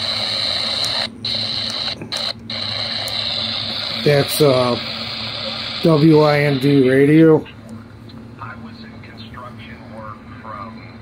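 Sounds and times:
radio static and hiss: 0.0 - 11.0.

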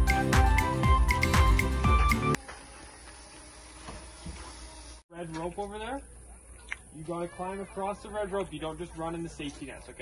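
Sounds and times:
background music: 0.0 - 2.4.

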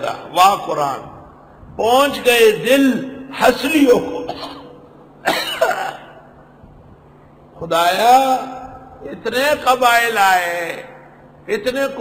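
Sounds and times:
man coughing: 4.2 - 6.3.

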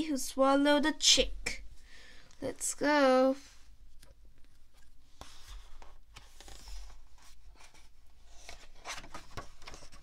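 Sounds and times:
paper rustling: 5.2 - 10.0.

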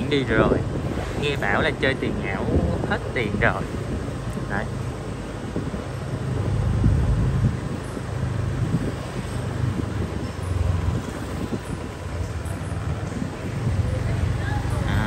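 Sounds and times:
motorbike rumble: 0.0 - 15.0
wind buffeting microphone: 0.0 - 15.0.

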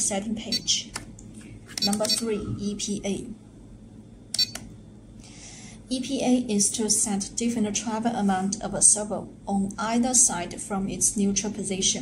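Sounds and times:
transmitter button clicks: 1.8 - 2.3, 4.3 - 4.7.

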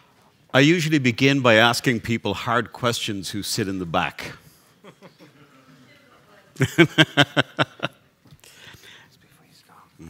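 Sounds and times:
person whispering: 8.8 - 10.0.

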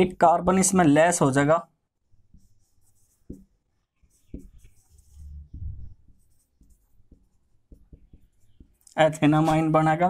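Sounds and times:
marker writing on whiteboard: 2.0 - 9.9.

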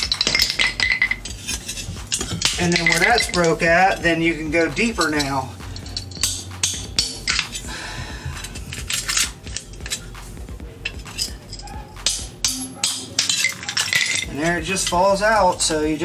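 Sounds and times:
pry bar scraping concrete: 0.0 - 7.7, 10.9 - 16.0
metallic clinks and knocks: 0.0 - 16.0.

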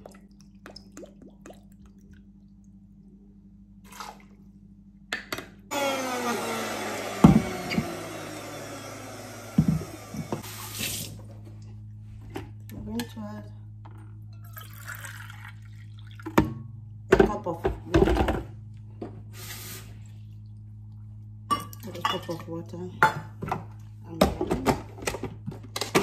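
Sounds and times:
water pouring: 0.0 - 2.7, 14.4 - 16.4.

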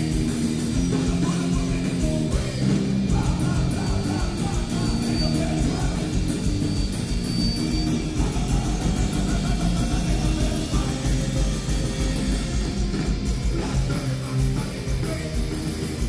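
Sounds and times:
bass guitar: 0.0 - 16.0
drum kit steady beat: 0.0 - 16.0
electric guitar: 0.0 - 16.0.

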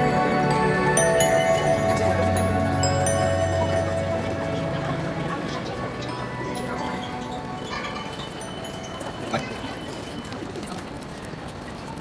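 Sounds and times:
background music: 0.0 - 9.3
murmur of crowded terminal: 0.0 - 12.0.

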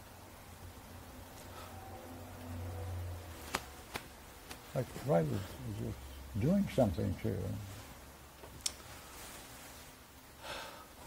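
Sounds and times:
low steady hum: 0.0 - 11.0
person speaking: 4.6 - 7.8
faint sharp clicks: 8.5 - 8.8.

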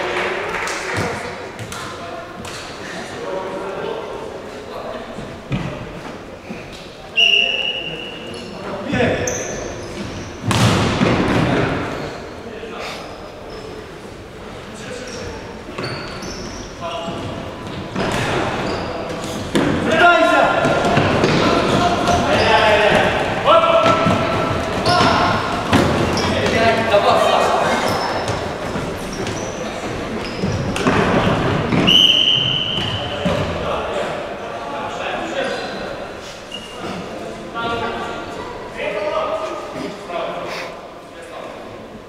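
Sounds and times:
players shouting: 19.8 - 28.3.

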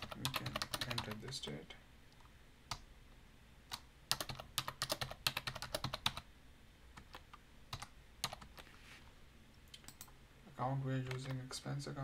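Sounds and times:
computer keyboard typing: 0.0 - 1.4, 3.7 - 6.3, 7.0 - 8.7, 9.8 - 10.2, 11.0 - 11.4.

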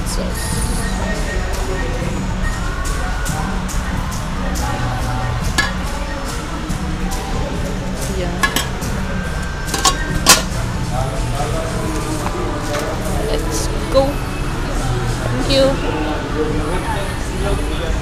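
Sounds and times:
background music: 0.0 - 18.0
chatter: 0.0 - 18.0
metal ladle clinking on trays: 5.5 - 5.9, 8.4 - 8.9, 9.6 - 10.6.

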